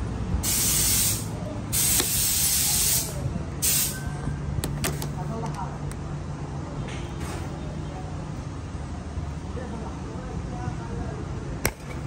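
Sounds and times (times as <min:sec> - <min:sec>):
hissing spray bursts: 0:00.4 - 0:04.0.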